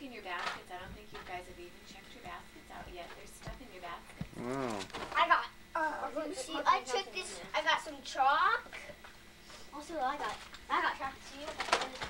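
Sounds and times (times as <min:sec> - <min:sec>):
child making wordless sounds: 0:05.2 - 0:08.8.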